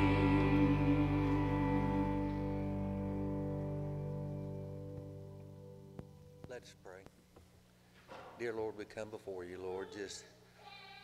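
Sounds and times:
low steady hum: 0.0 - 10.6
man speaking over a microphone: 8.4 - 10.3.

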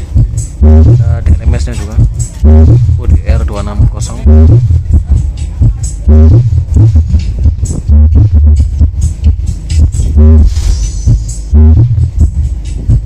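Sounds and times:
loud electronic dance music: 0.0 - 13.0.

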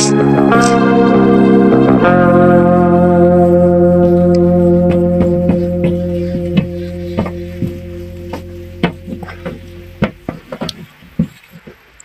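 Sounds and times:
held music chord: 0.0 - 10.7.

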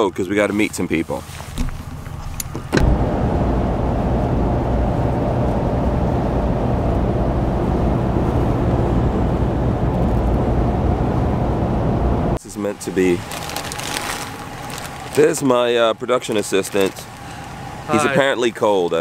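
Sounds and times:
engine and tyre drone inside cab: 1.2 - 12.4.

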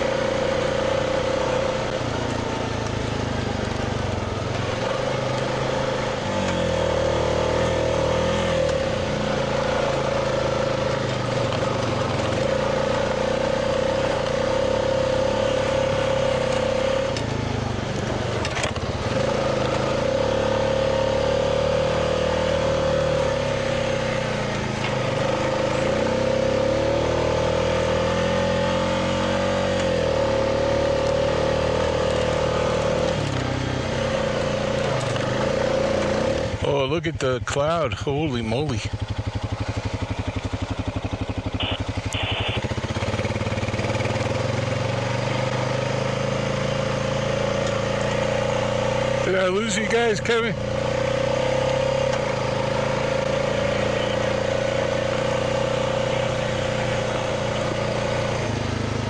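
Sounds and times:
quad bike engine running: 0.0 - 59.0.

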